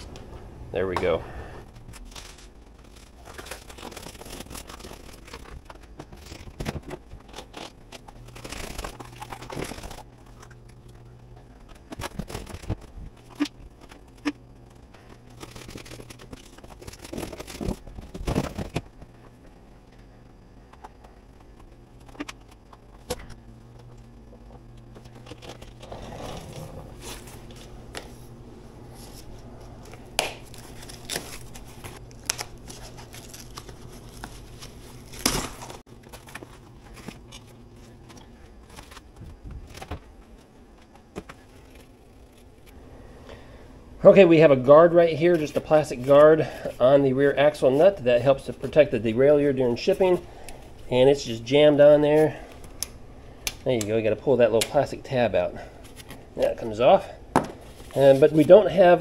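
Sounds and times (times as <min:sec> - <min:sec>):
packaging rustling and tearing: 0:01.8 - 0:18.8, 0:29.0 - 0:40.4.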